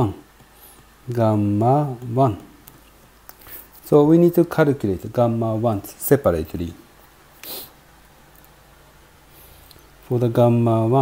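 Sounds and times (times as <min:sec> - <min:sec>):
faint low hum: 0:00.0 - 0:11.0
soft breath: 0:00.5 - 0:01.0, 0:09.2 - 0:09.9.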